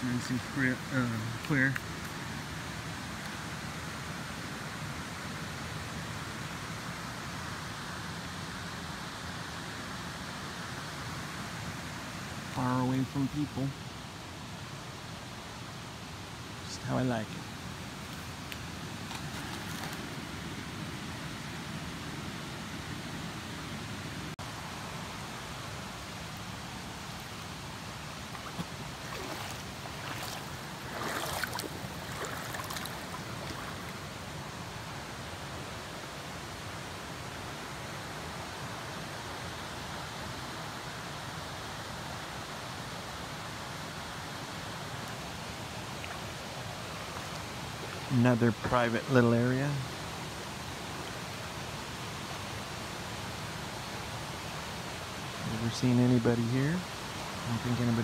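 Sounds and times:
creek flowing over rocks: 0.0 - 58.0.

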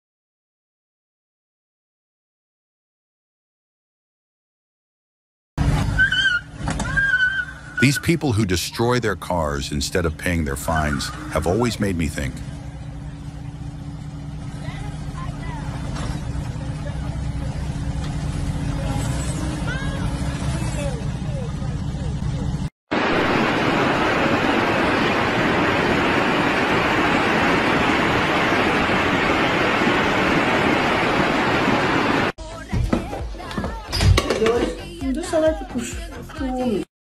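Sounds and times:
car engine humming: 5.6 - 22.7
steady rushing noise: 22.9 - 32.4.

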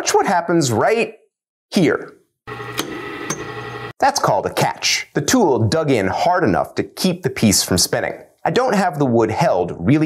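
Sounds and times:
wood lathe motor hum: 2.5 - 3.9.

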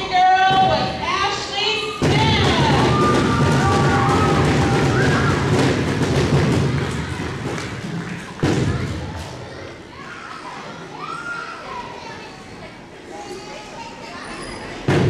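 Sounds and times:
children's voices and chatter: 0.0 - 15.0
audience clapping: 3.6 - 9.4.

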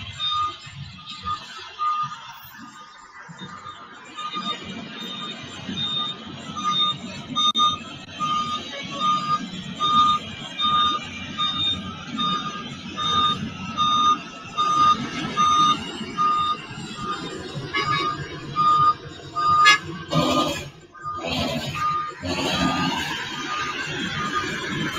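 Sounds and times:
diesel engines rumbling: 0.0 - 24.9
reversing alarm beeping: 0.0 - 24.9.

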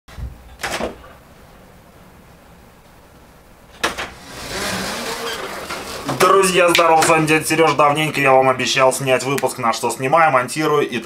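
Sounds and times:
door pushed open: 3.8 - 7.2.

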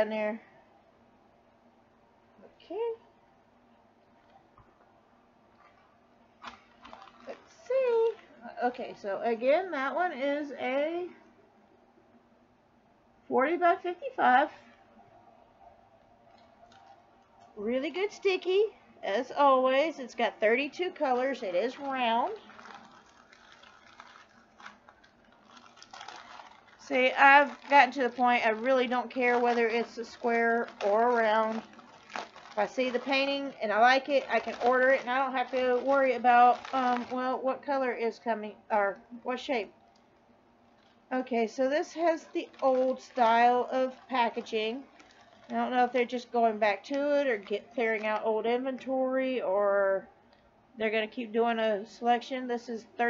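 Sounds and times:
packaging rustling: 5.6 - 8.5, 16.2 - 17.6, 20.1 - 38.2, 39.4 - 48.4.

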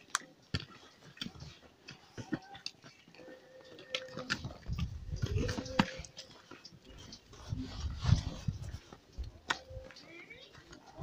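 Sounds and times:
footsteps on stone stairs: 4.2 - 11.0
low rumble of wind: 4.5 - 6.1, 6.8 - 9.9.

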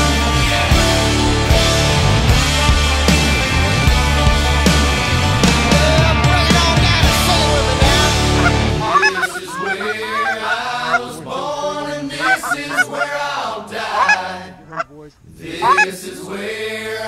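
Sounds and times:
music with heavy bass: 0.0 - 9.4
geese honking: 5.3 - 16.0.

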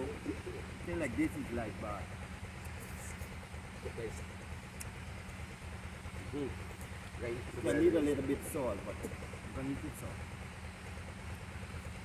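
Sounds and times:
low motor drone: 0.0 - 12.0.

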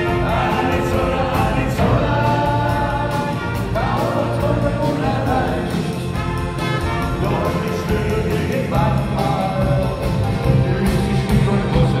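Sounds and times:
live dance band playing: 0.0 - 12.0.

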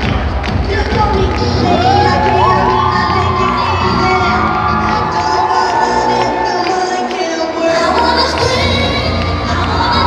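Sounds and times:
crowd cheering: 0.0 - 10.0
dance music with steady beat: 0.0 - 10.0.

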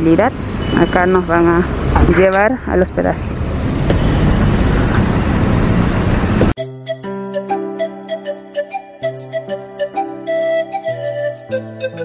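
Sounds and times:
road traffic and car engine: 0.0 - 6.6
flute melody music: 6.4 - 12.0.

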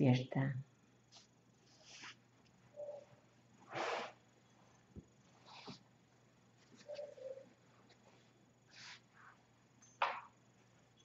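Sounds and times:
faint soft sounds: 1.0 - 11.0.

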